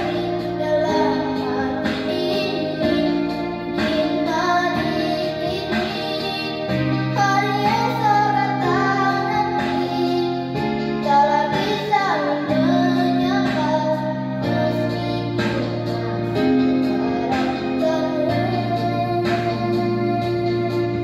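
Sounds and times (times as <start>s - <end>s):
backing track of held chords: 0.0s - 21.0s
girl singing into a microphone: 0.0s - 21.0s.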